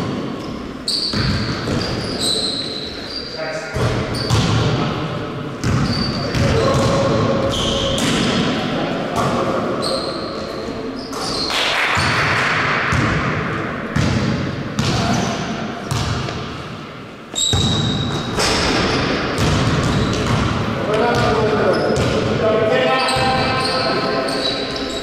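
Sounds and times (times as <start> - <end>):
basketball bouncing on gym floor: 1.1 - 2.0, 3.8 - 4.8, 5.6 - 8.4, 12.0 - 16.6, 17.4 - 22.4.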